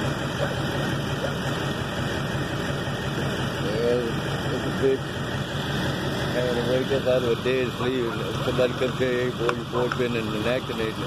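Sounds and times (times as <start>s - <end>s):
distant voices: 0.0s - 11.0s
vehicle engine idling: 0.0s - 11.0s.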